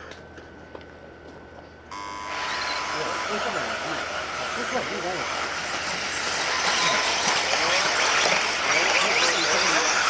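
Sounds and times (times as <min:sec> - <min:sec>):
rc car motors whining: 0:01.9 - 0:10.0.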